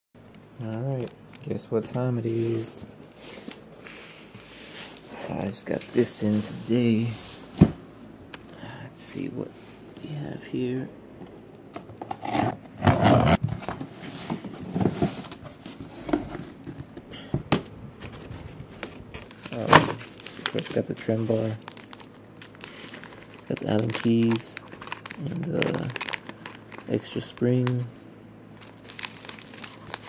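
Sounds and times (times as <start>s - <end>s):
cardboard rustling and scraping: 2.2s - 7.8s, 11.9s - 17.0s, 18.0s - 21.6s
plastic bag crinkling: 18.8s - 27.9s, 28.5s - 30.0s.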